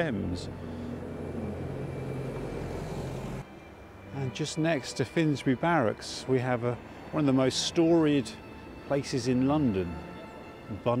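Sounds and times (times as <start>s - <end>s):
vehicle engine humming: 0.0s - 3.4s.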